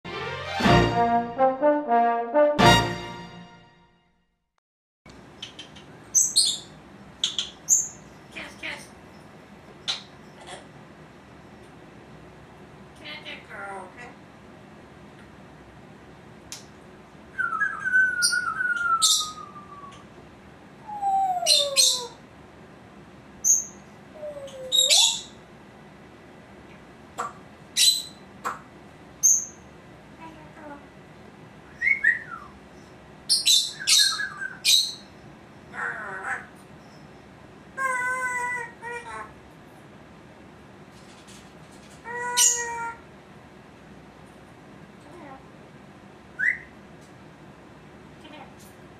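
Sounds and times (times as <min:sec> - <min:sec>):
parrot chirps and clicks: 0:05.1 - 0:06.5, 0:07.2 - 0:08.0
parrot gliding whistles: 0:17.3 - 0:20.1, 0:31.7 - 0:32.6, 0:33.5 - 0:35.0, 0:46.4 - 0:46.7
parrot call: 0:20.9 - 0:22.2, 0:23.4 - 0:25.4, 0:33.3 - 0:35.0, 0:35.7 - 0:36.6, 0:37.8 - 0:39.4, 0:42.0 - 0:43.0.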